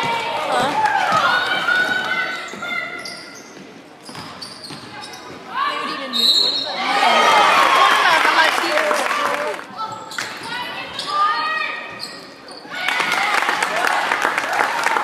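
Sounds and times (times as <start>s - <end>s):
voices of players and spectators: 0.0s - 15.0s.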